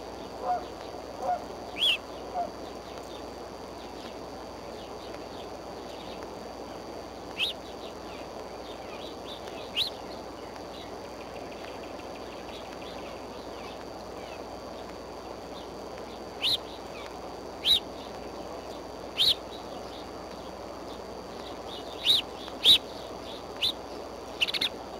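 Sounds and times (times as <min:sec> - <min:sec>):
steady outdoor hiss: 0:00.0 - 0:24.9
eagle chirping calls: 0:00.4 - 0:02.5, 0:07.4 - 0:07.6, 0:19.2 - 0:19.5, 0:21.6 - 0:24.8.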